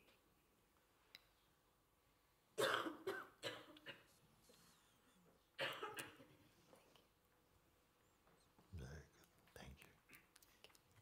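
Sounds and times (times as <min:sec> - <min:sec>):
person coughing: 0:02.6 - 0:04.1, 0:05.6 - 0:06.3.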